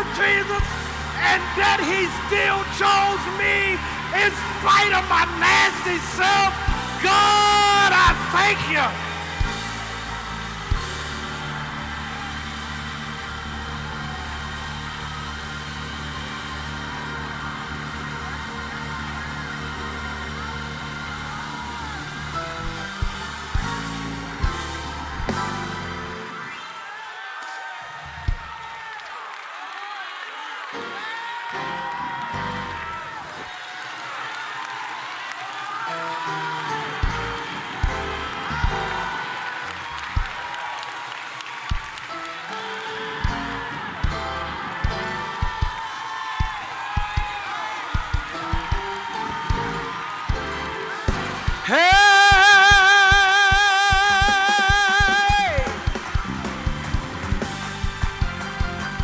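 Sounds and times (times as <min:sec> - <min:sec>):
bass notes: 0:00.0 - 0:02.8, 0:05.2 - 0:26.2, 0:55.4 - 0:59.0
organ playing chords: 0:00.0 - 0:26.6
congregation noise: 0:00.0 - 0:26.9.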